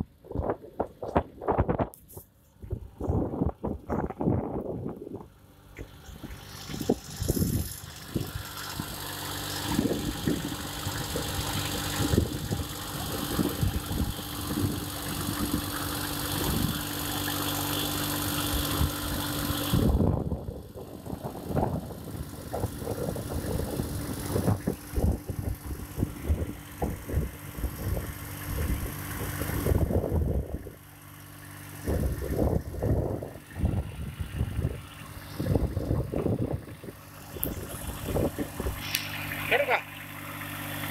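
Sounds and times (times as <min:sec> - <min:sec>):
tractor diesel engine running: 0:00.0 - 0:40.9.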